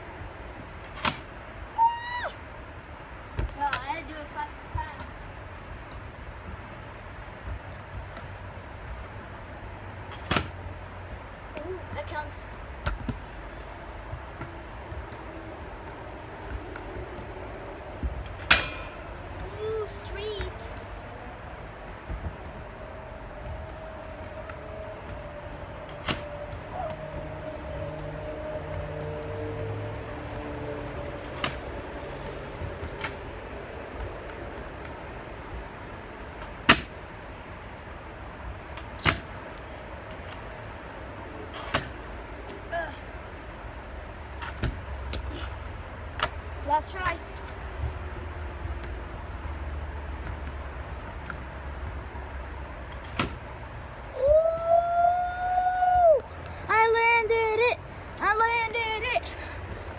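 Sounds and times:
outdoor background noise: 0.0s - 59.9s.

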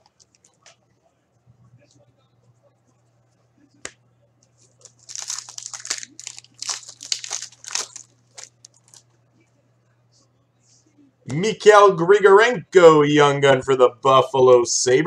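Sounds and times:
plastic wrapper tearing and crinkling: 4.6s - 9.0s.

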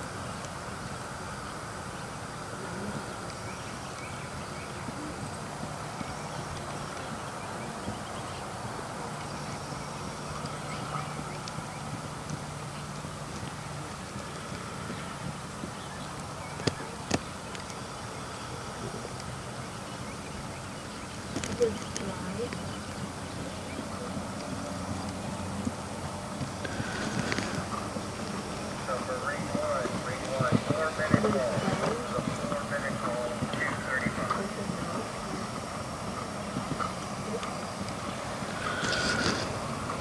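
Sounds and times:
outdoor background hum: 0.0s - 40.0s
horse hoofbeats on sand: 3.0s - 18.4s, 19.2s - 40.0s.

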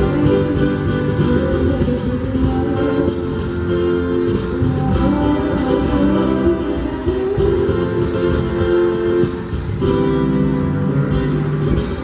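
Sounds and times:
acoustic guitars: 0.0s - 12.0s
bass guitar: 0.0s - 12.0s.

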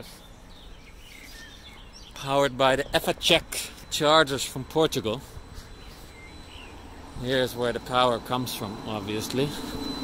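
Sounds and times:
faint bird chirps: 0.0s - 10.0s
outdoor background noise: 0.0s - 10.0s.

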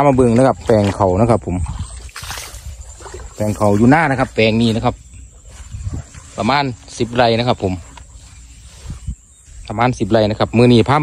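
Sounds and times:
man speaking: 3.4s - 5.0s, 6.3s - 7.9s, 9.6s - 11.0s.

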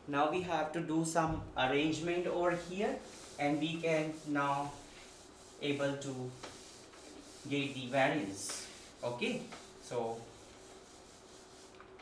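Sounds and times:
duster rubbing a whiteboard: 1.8s - 12.0s.

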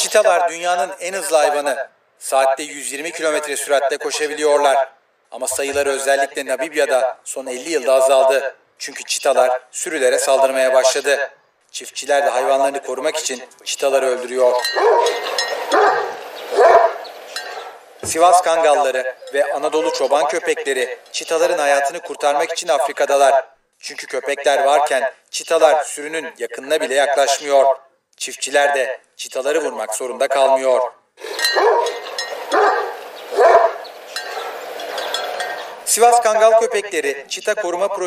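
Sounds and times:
faint steady ringing: 14.2s - 22.4s, 31.2s - 36.7s
dog barking: 14.6s - 17.8s, 31.2s - 35.8s.

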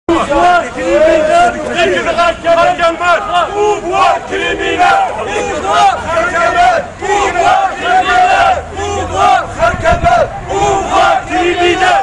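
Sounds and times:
crowd chanting: 0.1s - 12.0s.

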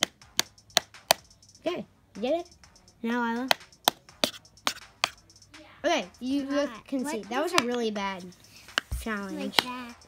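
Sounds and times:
stick tapping on metal laptop lid: 0.0s - 1.2s
person speaking: 1.5s - 10.0s.

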